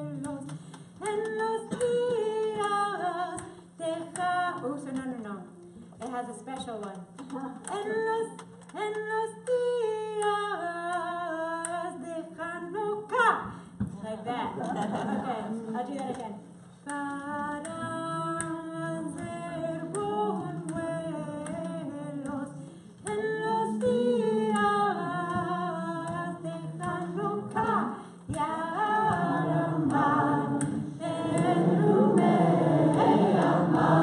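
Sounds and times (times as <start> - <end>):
group singing a cappella: 0.0 - 4.2, 17.1 - 34.0.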